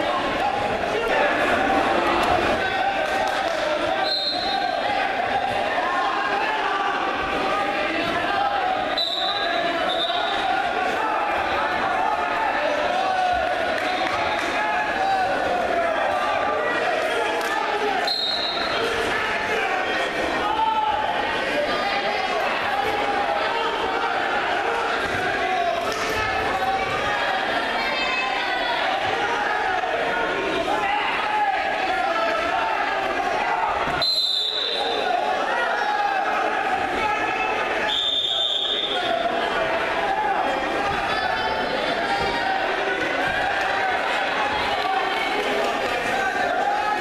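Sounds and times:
chatter of voices: 0.0 - 47.0
crowd talking and shouting: 0.0 - 47.0
referee whistle: 4.0 - 4.8, 8.9 - 10.4, 18.0 - 18.8, 33.9 - 35.0, 37.8 - 39.2.

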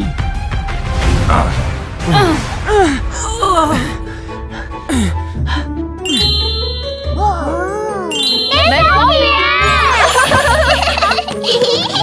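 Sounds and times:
background music: 0.0 - 12.0
bright chime: 8.0 - 10.6.

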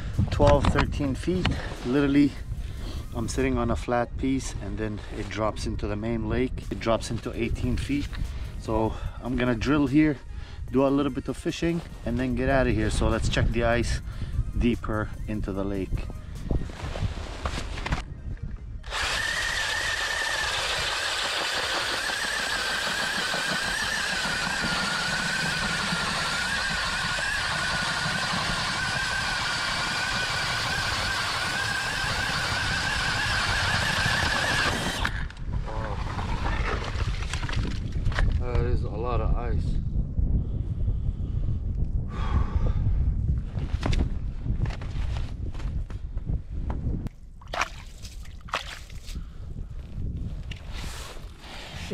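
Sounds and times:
gusty noise: 0.0 - 19.4, 28.6 - 51.9
cordless drill motor whine: 18.8 - 35.4.

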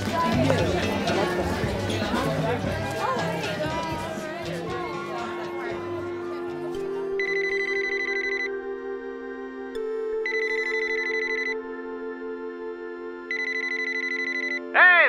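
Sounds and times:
soft held music: 0.0 - 8.4
telephone ringing: 7.2 - 8.5, 10.2 - 11.6, 13.3 - 14.7.

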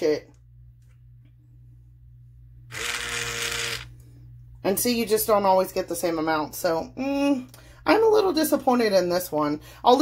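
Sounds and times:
soap dispenser motor whirring: 2.7 - 4.0.

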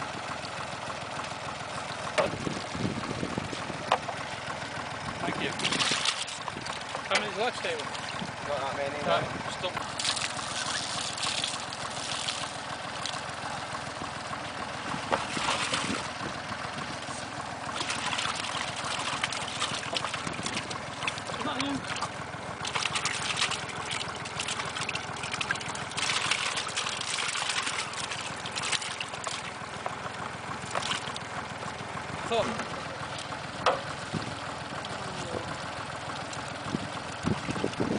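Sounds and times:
water splashing and dripping: 5.6 - 7.2, 9.9 - 13.2, 15.0 - 16.2, 17.7 - 31.8.

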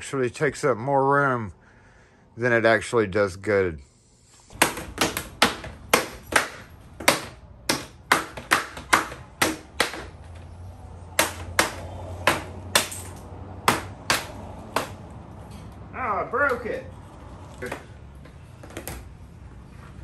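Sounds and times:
mallet knocking plastic frame: 4.6 - 10.2.

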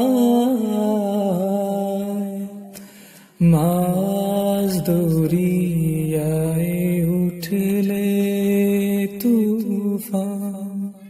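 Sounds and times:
man singing devotional song: 0.0 - 11.0.

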